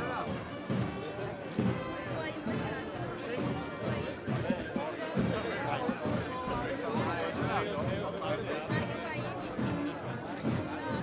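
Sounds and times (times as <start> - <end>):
background music: 0.0 - 11.0
people talking over one another: 0.0 - 11.0.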